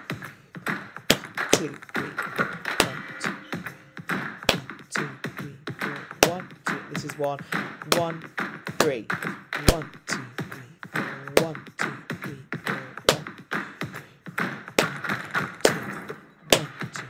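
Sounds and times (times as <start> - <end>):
hand claps: 0.0 - 17.0.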